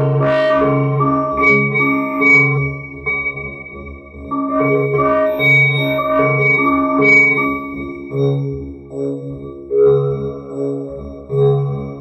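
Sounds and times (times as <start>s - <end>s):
steady low synth note: 0.0s - 8.0s
ringing synthesizer tones: 0.0s - 8.6s.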